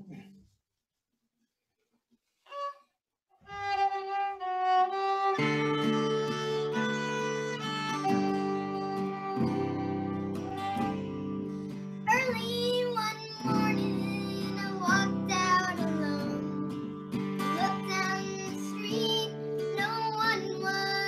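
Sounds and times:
fiddle melody: 2.5s - 21.0s
strummed acoustic guitar: 4.8s - 21.0s
girl singing: 12.0s - 21.0s.

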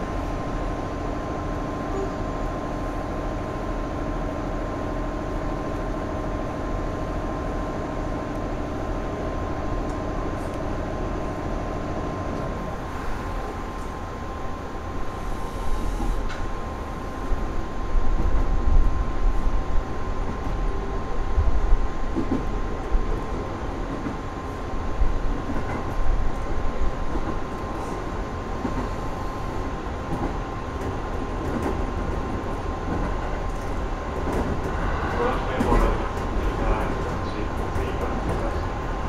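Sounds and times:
train wheels rumbling on rail: 0.0s - 39.0s.

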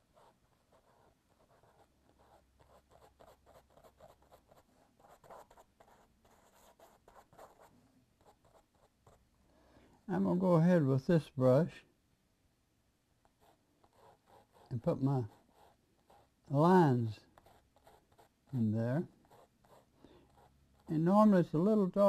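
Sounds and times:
paintbrush strokes: 13.2s - 22.0s.

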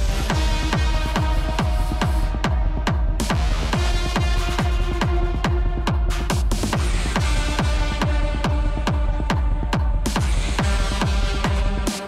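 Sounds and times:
electronic dance music: 0.0s - 12.0s
kick drum beat: 0.0s - 12.0s
synth chords: 0.0s - 12.0s.

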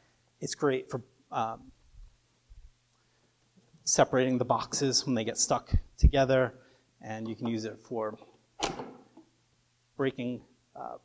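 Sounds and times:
man speaking: 0.4s - 1.7s, 3.9s - 8.2s, 10.0s - 11.0s.

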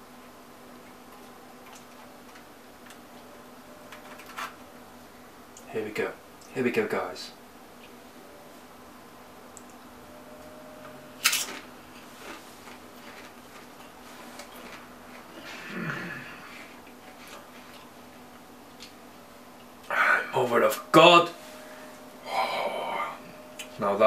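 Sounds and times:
faint steady hum: 0.0s - 24.0s
person humming mmm: 15.3s - 16.8s, 22.2s - 23.7s.

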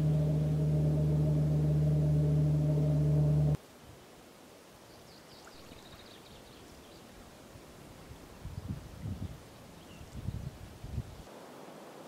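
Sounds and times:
loud low droning tone: 0.0s - 3.6s.

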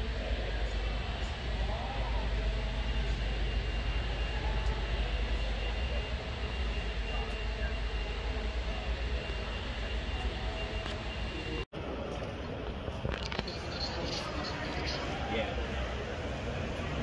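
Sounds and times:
background chatter: 0.0s - 17.0s.

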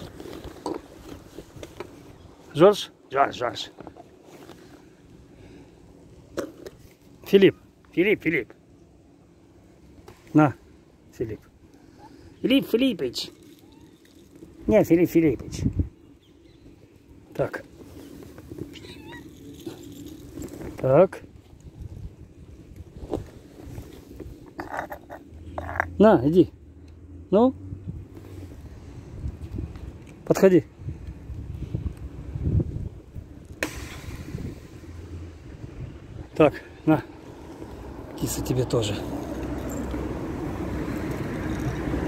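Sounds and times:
cat kibble rattling in glass jar: 13.2s - 14.6s, 18.7s - 20.8s, 40.9s - 42.0s.

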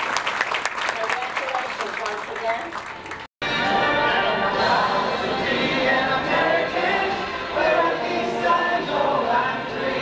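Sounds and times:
music: 2.9s - 10.0s
group of voices singing: 3.7s - 10.0s.

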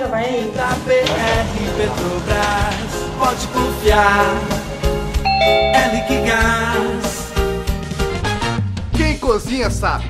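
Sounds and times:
background music: 0.3s - 8.8s
ding-dong doorbell chime: 5.3s - 7.2s.

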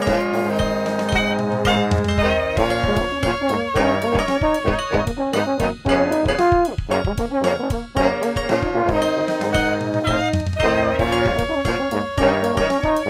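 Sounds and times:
brass band funk tune: 0.0s - 13.0s
saxophones: 0.0s - 13.0s
sousaphone: 0.0s - 13.0s
steady drum beat: 0.0s - 13.0s.

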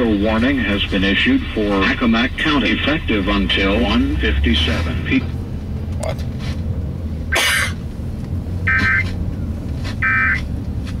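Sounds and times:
low car rumble: 0.0s - 11.0s.

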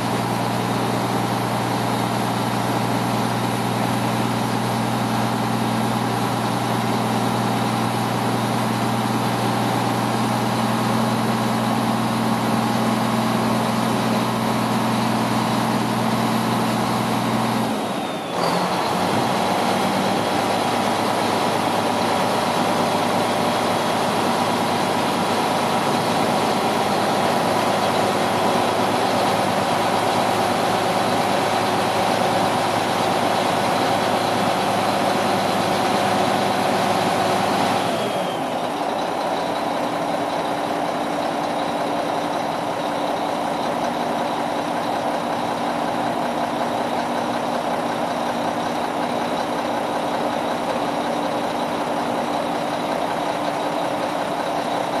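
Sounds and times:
diesel truck engine running: 0.0s - 55.0s.

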